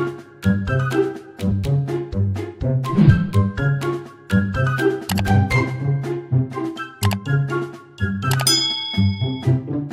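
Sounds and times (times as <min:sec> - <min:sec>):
notification bell ding: 0:08.4 - 0:09.6.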